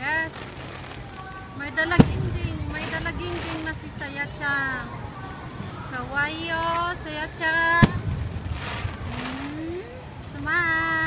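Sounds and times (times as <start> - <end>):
high-pitched voices: 8.6 - 11.0.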